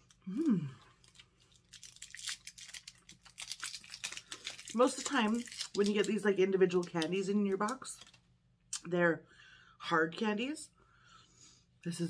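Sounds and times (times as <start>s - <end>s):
candy wrapper crinkling: 0.0s - 8.3s.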